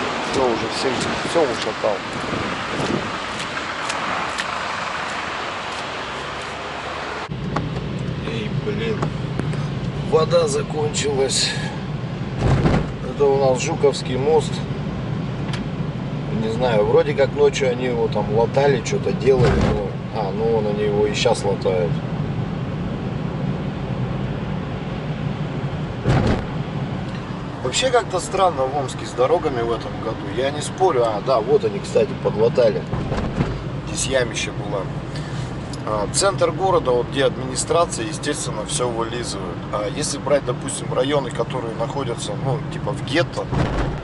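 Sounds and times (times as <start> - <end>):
car engine and tyre noise: 0.0 - 44.0
city traffic noise: 0.0 - 44.0.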